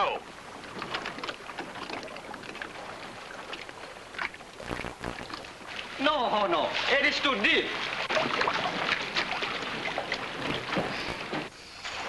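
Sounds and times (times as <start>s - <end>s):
water splashing and lapping: 0.2s - 12.0s.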